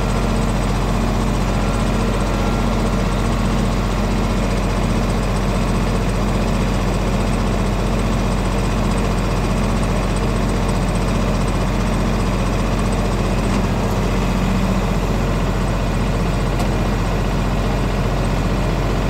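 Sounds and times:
tractor diesel engine idling: 0:00.0 - 0:19.0.

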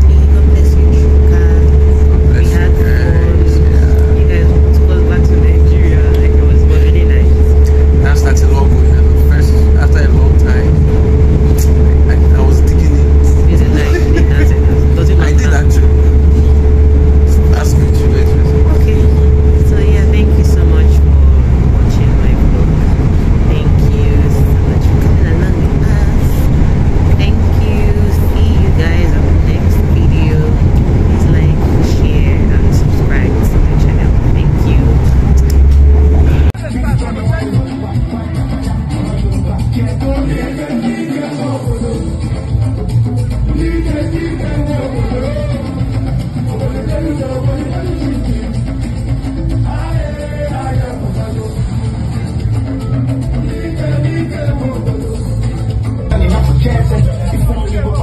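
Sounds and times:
train low rumble: 0:00.0 - 0:37.0
steady hum: 0:00.0 - 0:37.8.

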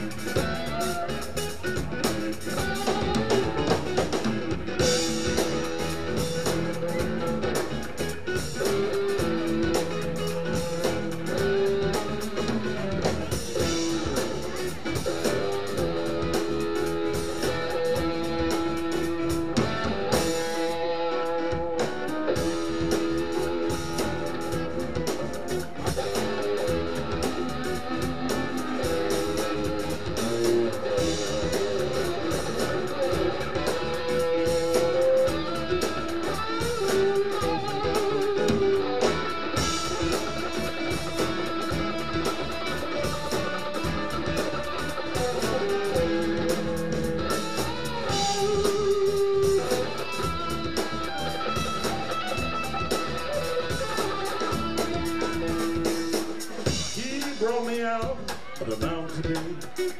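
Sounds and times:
electric guitar bending notes: 0:00.0 - 0:59.7
live blues-rock band playing: 0:00.0 - 0:59.9.

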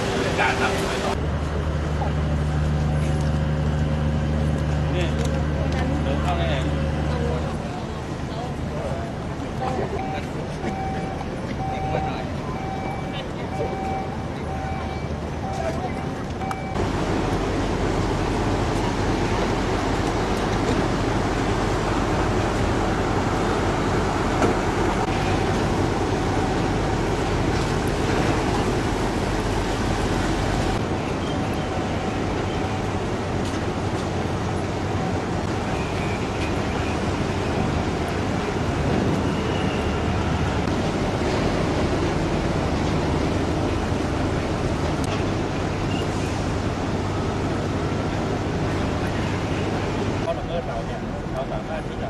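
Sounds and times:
engines and machinery rumbling: 0:00.0 - 0:52.0.

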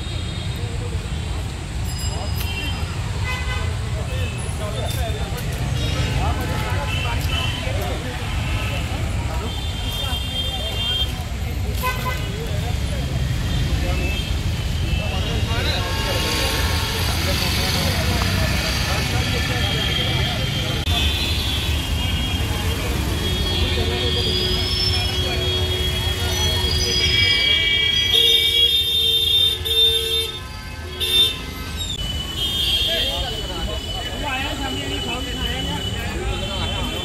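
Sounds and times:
low traffic rumble: 0:00.0 - 0:37.0.

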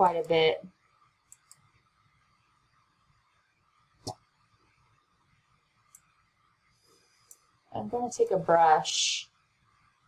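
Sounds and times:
computer mouse clicking: 0:01.2 - 0:01.7, 0:05.8 - 0:06.1.

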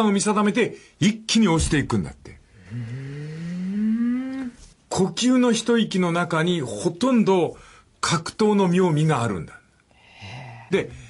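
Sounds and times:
person's drawn-out vocal interjection: 0:02.6 - 0:04.6.

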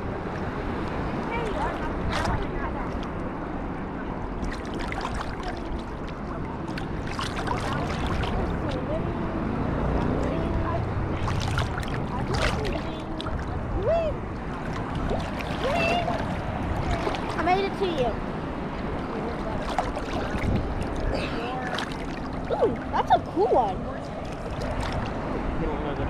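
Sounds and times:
water sloshing and slapping: 0:00.0 - 0:25.6
water splashes: 0:00.0 - 0:26.0
faint voices calling: 0:11.9 - 0:25.6.

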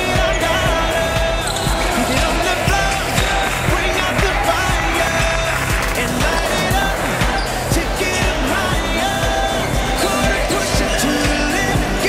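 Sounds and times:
pop music with steady beat: 0:00.0 - 0:12.0.

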